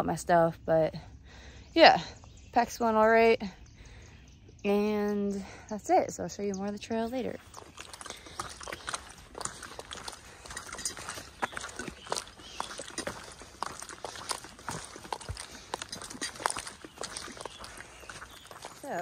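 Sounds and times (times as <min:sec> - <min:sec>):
footsteps on rocky trail: 0:06.7 - 0:19.0
trekking poles clicking on rock: 0:07.4 - 0:19.0.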